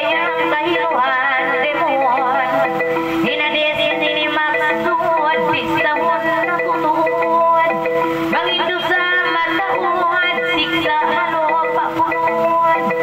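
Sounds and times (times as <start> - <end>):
electronic keyboard accompaniment: 0.0 - 13.0
woman singing into microphone: 0.0 - 13.0.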